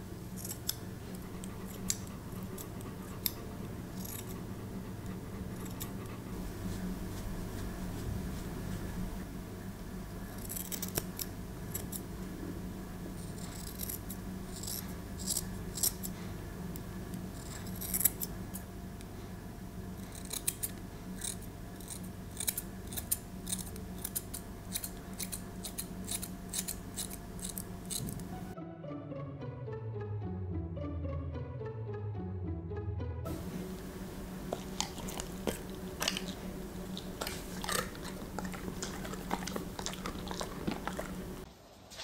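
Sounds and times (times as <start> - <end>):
scissors snipping fur: 0.4 - 4.5, 5.1 - 6.0, 10.3 - 12.0, 13.2 - 16.2, 17.1 - 18.7, 20.0 - 28.3.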